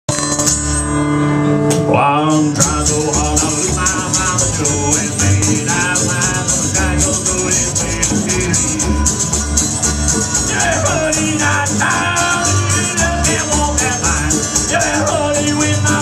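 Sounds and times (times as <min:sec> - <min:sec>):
acoustic guitar: 0:00.1 - 0:16.0
upright bass: 0:00.1 - 0:16.0
washboard rhythm: 0:02.3 - 0:16.0
harmonica melody: 0:02.6 - 0:16.0.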